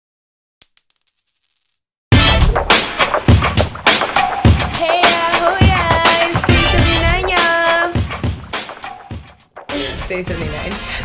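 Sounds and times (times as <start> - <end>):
metal object clinking and bouncing: 0.6 - 1.8.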